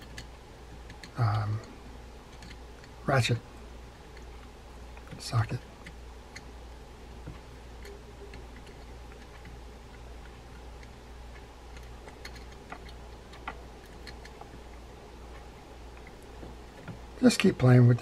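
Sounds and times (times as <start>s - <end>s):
small metal clicks and ticks: 0.0s - 3.0s, 7.3s - 14.6s
steady low hum: 0.0s - 18.0s.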